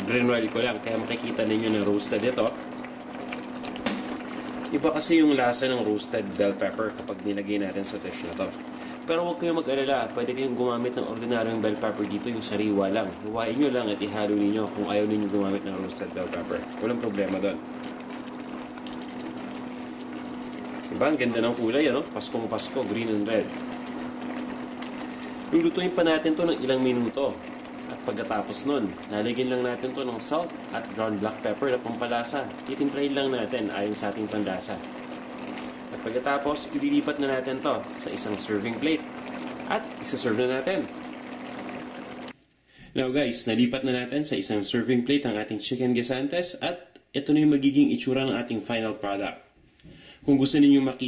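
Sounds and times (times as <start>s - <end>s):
stew bubbling in a pot: 0.0s - 46.6s.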